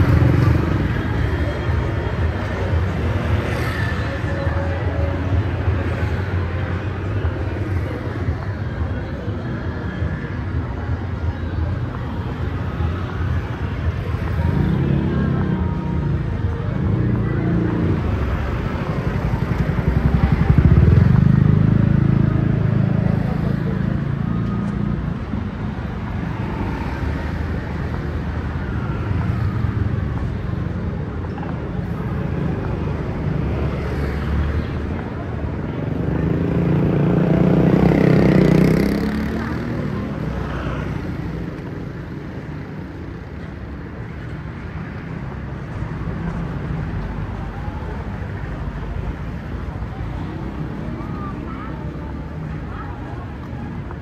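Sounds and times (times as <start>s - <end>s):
cars and scooters passing: 0.0s - 54.0s
low traffic rumble: 0.0s - 54.0s.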